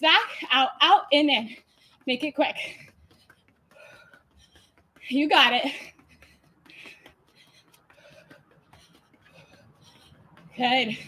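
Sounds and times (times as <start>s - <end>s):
soft footfalls on exercise mat: 0.1s - 11.0s
woman breathing quickly: 1.3s - 11.0s.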